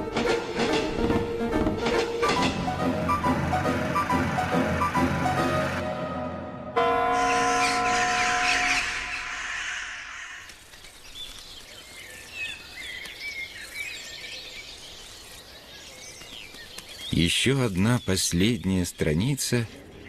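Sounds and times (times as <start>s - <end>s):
music held chord: 1.3s - 8.2s
small birds chirping: 7.3s - 20.0s.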